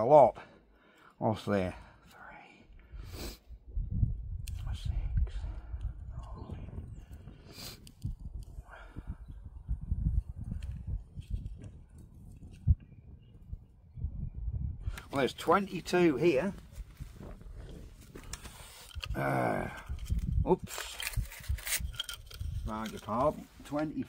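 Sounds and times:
wind rumble on microphone: 2.8s - 24.0s
person muttering: 19.1s - 20.0s.

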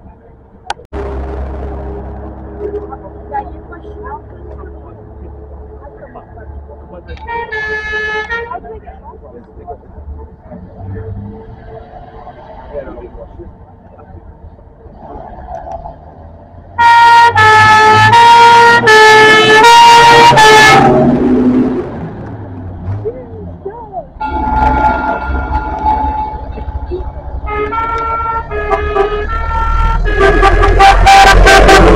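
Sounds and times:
engine rumble: 0.0s - 31.9s
two-tone vehicle horn: 7.2s - 8.6s, 16.8s - 21.2s, 24.2s - 31.9s
quieter horn: 16.8s - 21.5s, 24.2s - 31.9s.

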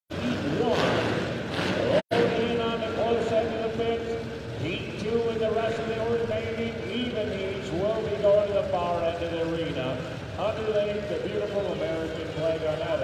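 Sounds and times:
man talking over loudspeaker: 0.1s - 1.2s, 1.8s - 13.0s.

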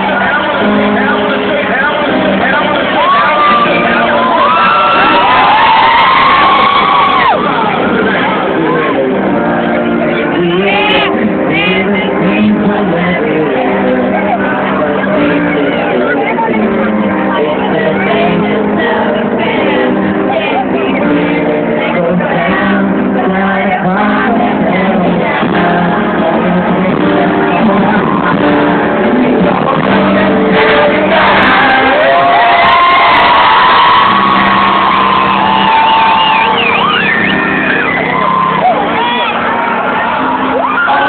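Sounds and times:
crowd cheering: 0.0s - 12.5s, 23.8s - 41.0s
loud live concert music: 0.0s - 41.0s.

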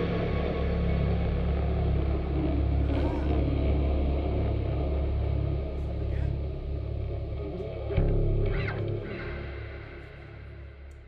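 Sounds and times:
amplified instruments droning: 0.0s - 11.0s.

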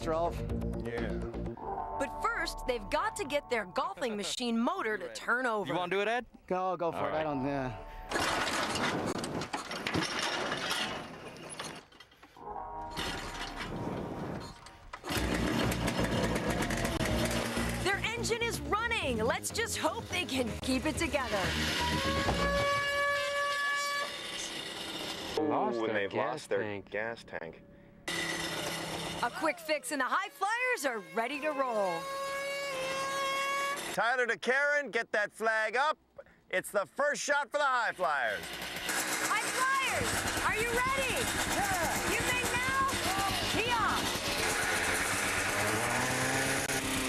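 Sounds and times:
kick-started engine running: 14.9s - 18.5s, 20.0s - 23.4s, 28.1s - 29.5s, 30.9s - 34.0s, 38.3s - 47.0s
motor high-pitched whine: 21.1s - 25.4s, 28.1s - 34.0s.

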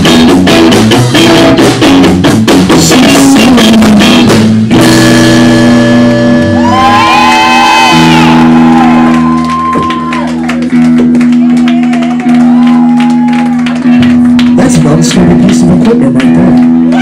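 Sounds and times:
guitar chords: 0.0s - 17.0s
live band playing loud: 0.0s - 17.0s.

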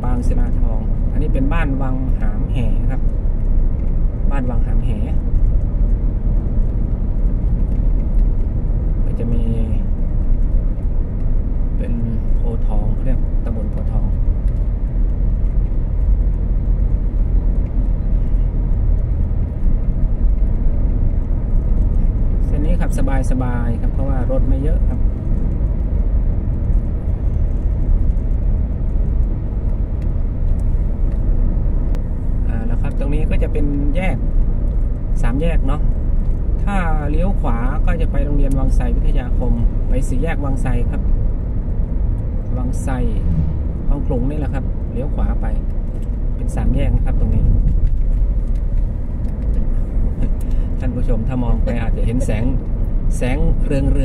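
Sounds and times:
road and engine noise in car: 0.0s - 54.0s
man speaking: 50.8s - 52.6s.

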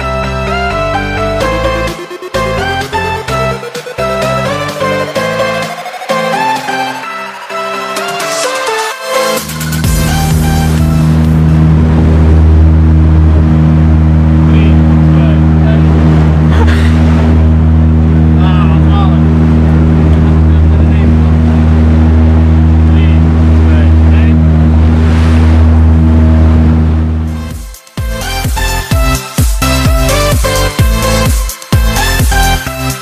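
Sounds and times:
motorboat engine running: 9.2s - 33.0s.

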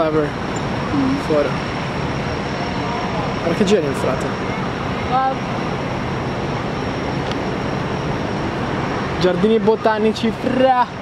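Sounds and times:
outdoor city background noise: 0.0s - 11.0s.

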